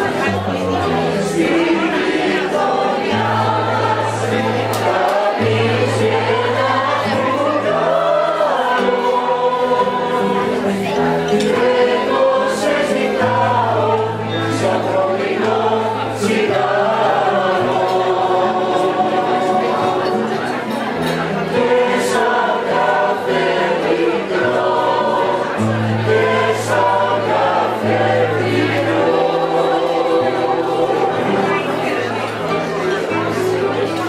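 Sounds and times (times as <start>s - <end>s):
choir singing with accompaniment: 0.0s - 34.0s.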